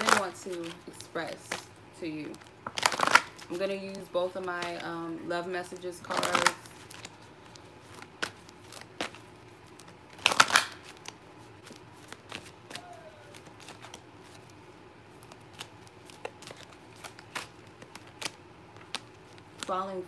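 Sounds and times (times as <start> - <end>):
cards clicking and slapping: 0.0 - 5.0, 5.7 - 20.0
cards being shuffled: 0.0 - 20.0.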